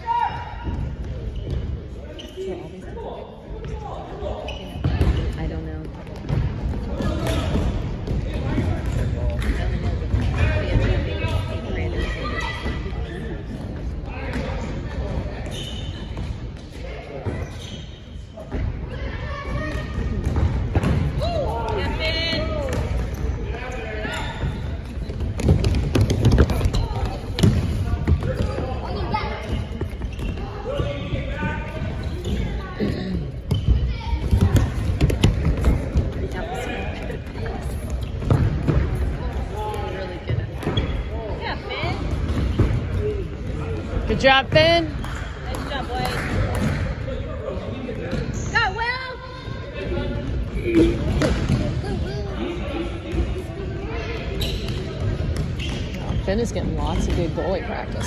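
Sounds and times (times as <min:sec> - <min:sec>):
soccer ball thudding on gym floor: 0:25.4 - 0:28.6.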